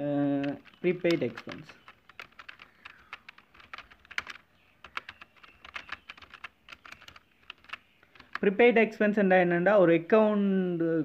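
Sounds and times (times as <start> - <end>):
computer keyboard typing: 0.2 - 8.6.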